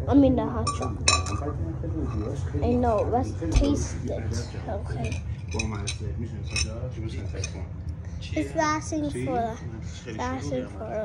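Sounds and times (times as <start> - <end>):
spoon clinking against cup: 0.7 - 1.5, 5.0 - 7.6.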